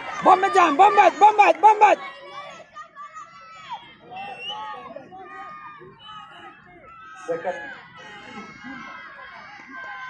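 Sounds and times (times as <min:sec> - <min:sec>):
crowd chattering and calling out: 0:00.0 - 0:10.0.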